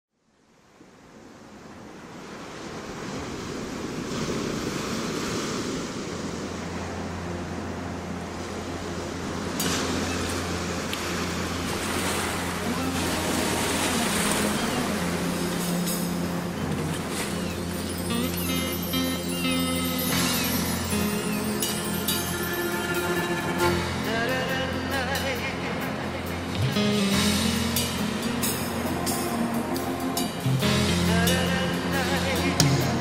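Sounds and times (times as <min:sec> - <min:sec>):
ocean waves washing in: 0:00.4 - 0:33.0
low bass drone: 0:06.6 - 0:33.0.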